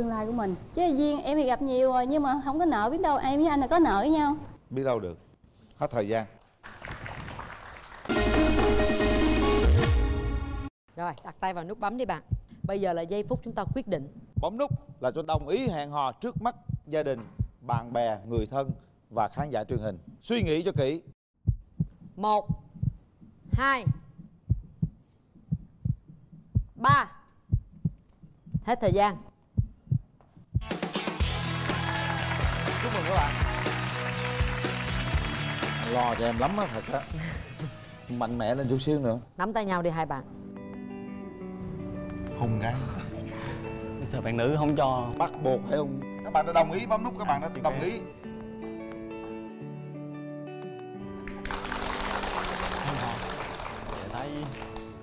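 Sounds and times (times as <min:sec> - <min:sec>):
audience applauding: 0:06.6 - 0:09.2, 0:30.8 - 0:37.9, 0:51.1 - 0:55.0
background music: 0:08.0 - 0:10.7, 0:30.6 - 0:55.0
heartbeat thuds: 0:12.1 - 0:30.7.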